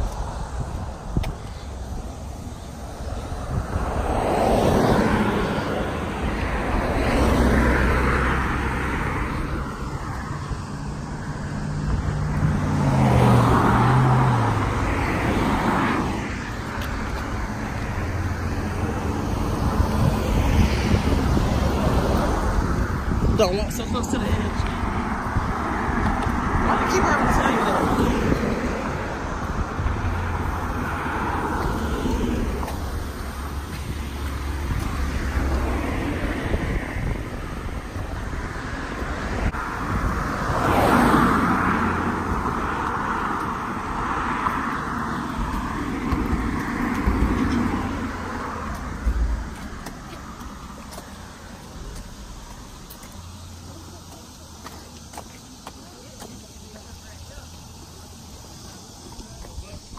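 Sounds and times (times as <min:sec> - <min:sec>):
cars passing close by: 0:00.0 - 0:59.9
steady low rumble: 0:45.4 - 0:53.6.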